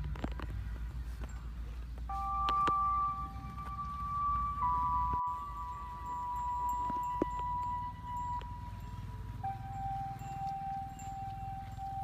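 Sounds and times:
low steady rumble: 0.0 - 12.0
slow background music: 0.1 - 12.0.

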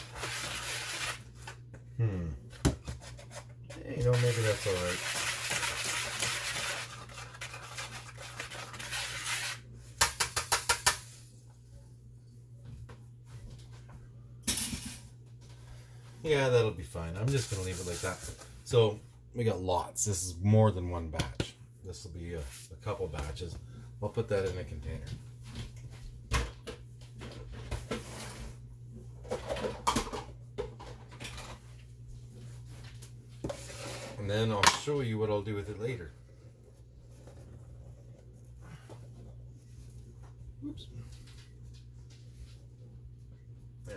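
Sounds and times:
utensil scraping through flour: 0.0 - 1.5, 3.0 - 9.7, 17.2 - 18.5, 33.4 - 34.6.

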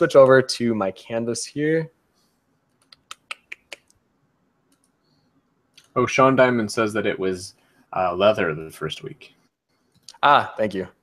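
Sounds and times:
computer keys clicking: 4.7 - 5.0.

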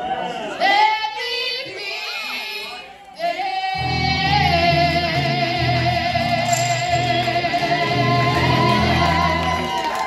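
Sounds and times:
women singing in harmony: 3.2 - 9.8
electric guitar accompaniment: 3.8 - 9.8.

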